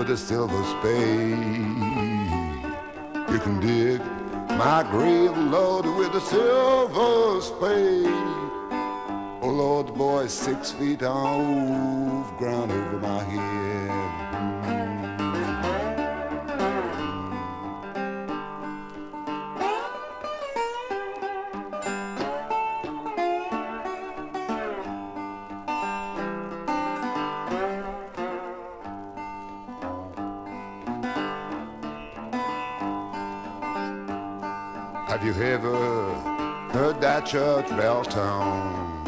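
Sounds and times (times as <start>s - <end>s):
blues guitar solo with bent notes: 0.0s - 39.0s.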